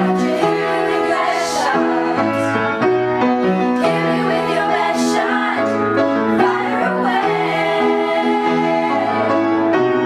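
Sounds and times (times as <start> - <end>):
girls singing: 0.0 - 2.6, 3.8 - 9.5
piano chords over bass line: 0.0 - 10.0.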